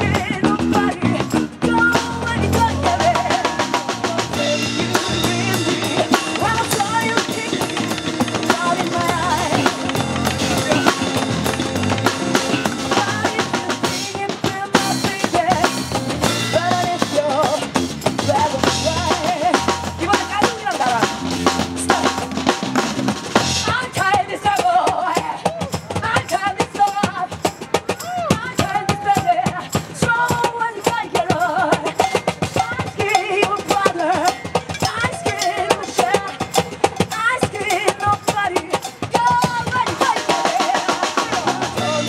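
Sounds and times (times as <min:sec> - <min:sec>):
drum kit: 0:00.0 - 0:42.0
hand drums and bucket drums: 0:00.0 - 0:42.0
live band playing: 0:00.0 - 0:42.0.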